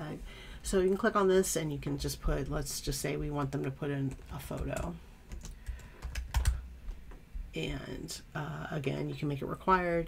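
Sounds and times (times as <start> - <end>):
typing on computer keyboard: 4.1 - 6.6.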